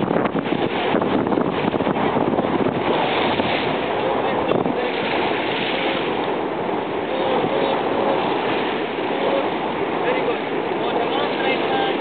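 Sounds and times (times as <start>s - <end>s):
sea waves washing: 0.0s - 12.0s
wind noise on microphone: 0.0s - 12.0s.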